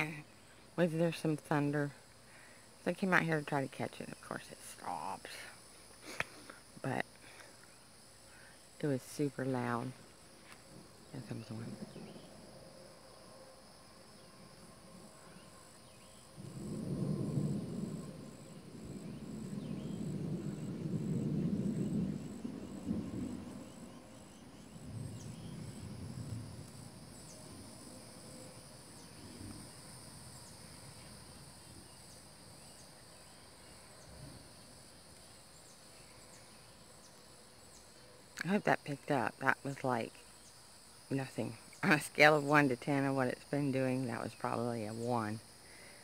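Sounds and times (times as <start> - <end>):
insects chirping: 0.0 - 46.0
thunder rumbling: 14.0 - 34.9.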